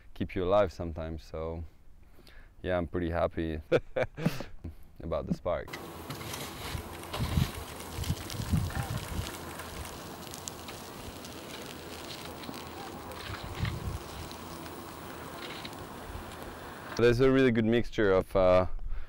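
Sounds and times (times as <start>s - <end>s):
steady rushing noise: 5.7s - 17.0s.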